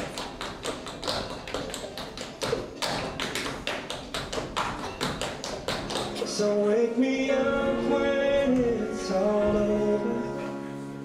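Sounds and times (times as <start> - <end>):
tap shoes on stage floor: 0.0 - 6.4.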